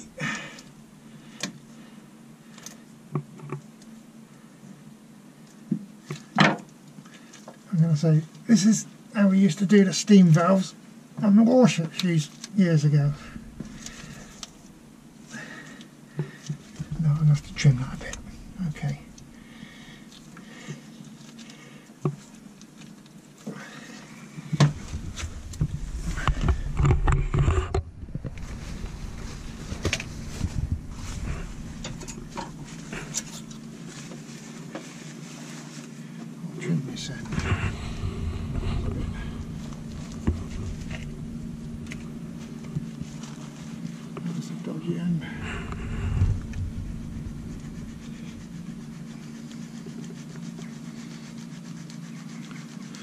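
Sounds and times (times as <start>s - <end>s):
steady low hum: 0.0s - 6.3s, 7.1s - 53.0s.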